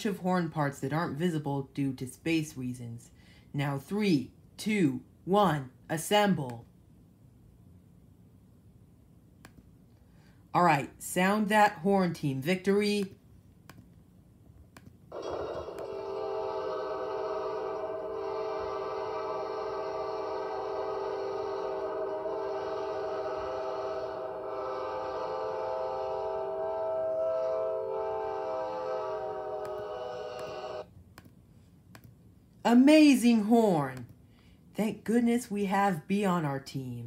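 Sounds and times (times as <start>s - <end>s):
locomotive horn chord: 15.1s - 30.8s.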